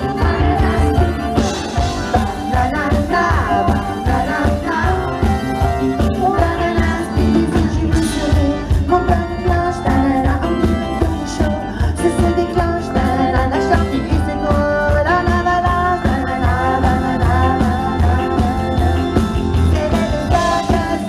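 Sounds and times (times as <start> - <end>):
pop band playing: 0.0 - 21.0
woman singing into microphone: 0.0 - 21.0.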